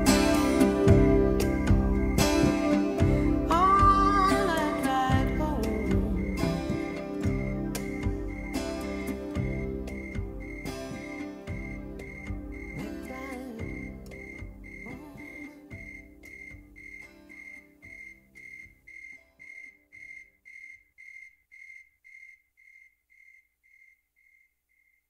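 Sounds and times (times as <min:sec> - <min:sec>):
guitar music: 0:00.0 - 0:18.4
electronic metronome beeping: 0:00.0 - 0:22.4.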